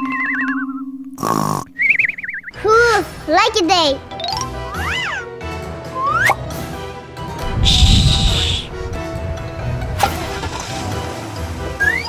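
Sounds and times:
cartoon snoring: 0:01.2 - 0:01.8.

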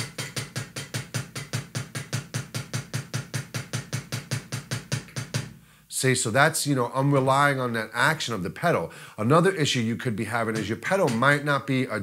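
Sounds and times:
kick drum beats: 0:00.0 - 0:05.6, 0:10.5 - 0:11.4.

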